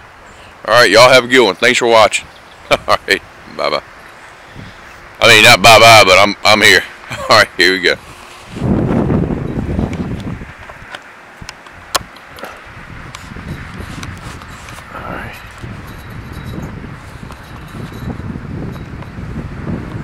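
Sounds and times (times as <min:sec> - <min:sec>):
wind buffeting microphone: 0:00.0 - 0:20.0.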